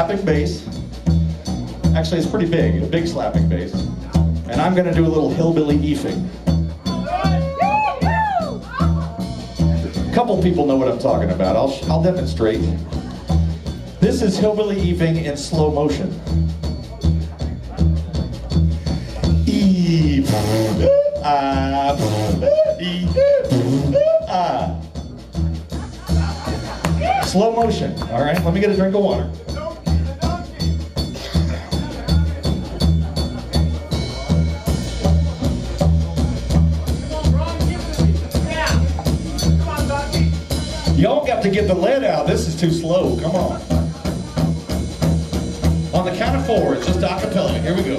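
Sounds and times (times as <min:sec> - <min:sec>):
slap double bass: 0:00.0 - 0:47.9.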